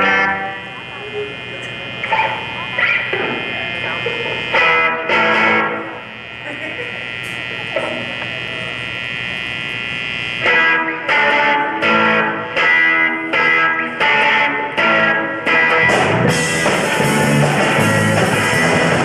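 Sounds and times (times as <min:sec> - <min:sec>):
electric guitar chord ringing: 0:00.0 - 0:19.0
electric guitar strummed chords: 0:00.0 - 0:19.0.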